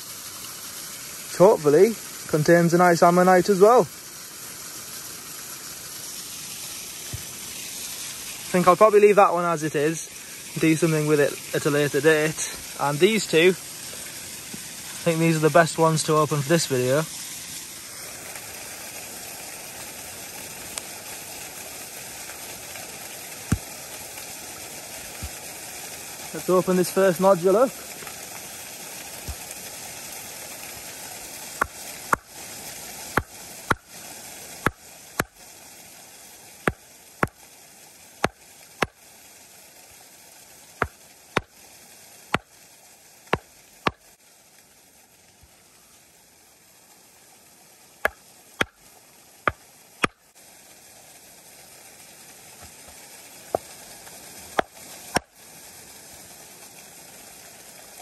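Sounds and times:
running water: 0:00.0 - 0:58.0.

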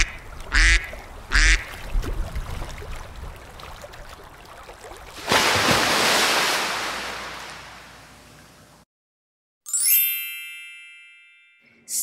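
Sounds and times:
surf washing in: 0:05.2 - 0:08.3.

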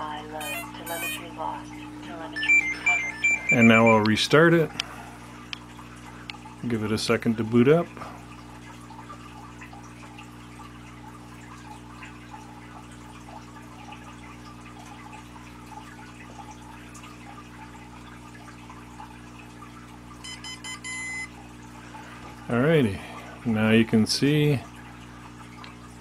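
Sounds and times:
quiet electrical hum: 0:00.0 - 0:26.0
rapid high-pitched electronic beeps: 0:02.4 - 0:04.0, 0:20.2 - 0:21.3.

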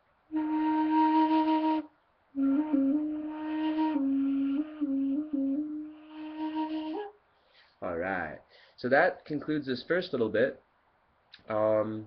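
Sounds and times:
end-blown flute: 0:00.3 - 0:07.1.

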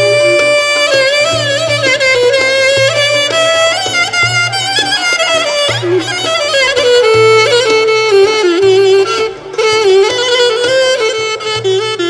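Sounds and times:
traditional dance music: 0:00.0 - 0:12.0.

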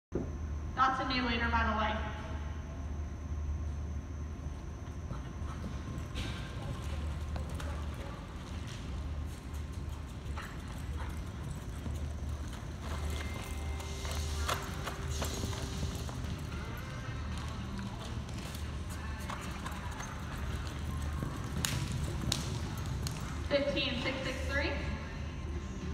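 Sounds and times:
steady low rumble: 0:01.5 - 0:25.9
horse hoofbeats on dirt: 0:04.5 - 0:24.5.

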